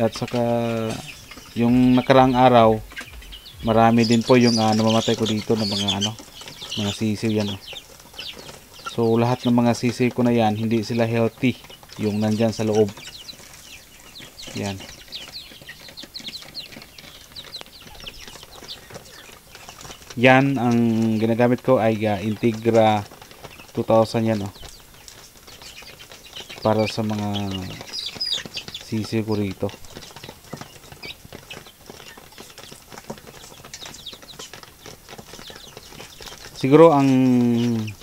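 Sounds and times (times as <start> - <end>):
beaks tapping plastic tray: 0.0 - 38.0
chicks peeping: 0.0 - 38.0.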